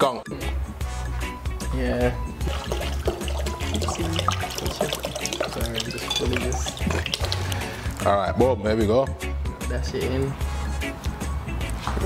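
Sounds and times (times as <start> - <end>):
background music with bass: 0.0 - 12.0
water pouring into bowl: 2.4 - 8.0.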